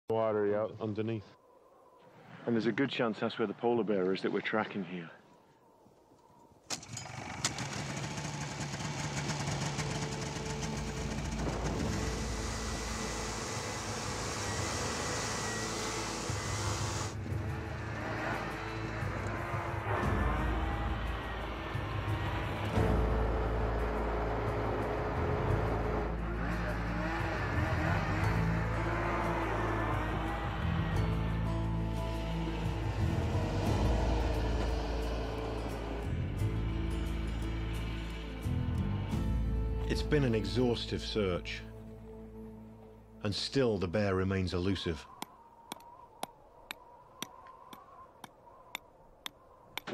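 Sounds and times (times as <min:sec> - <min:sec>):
snowmobile engine running: 0:07.0 - 0:38.4
music playing: 0:10.3 - 0:43.8.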